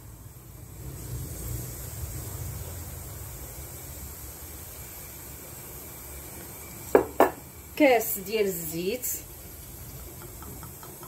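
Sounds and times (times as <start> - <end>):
sugar pouring into saucepan: 0.0 - 11.0.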